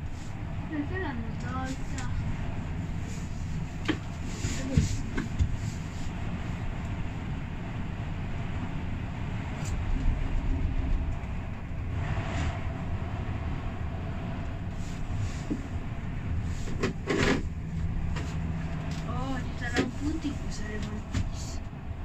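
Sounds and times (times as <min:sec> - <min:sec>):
gondola cabin rumble and rattle: 0:00.0 - 0:22.0
passing cabin rushing: 0:00.0 - 0:22.0.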